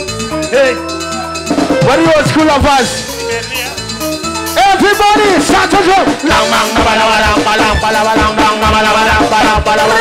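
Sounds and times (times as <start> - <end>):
cowbell keeping time: 0.0 - 10.0
live band music: 0.0 - 10.0
person singing: 6.1 - 10.0.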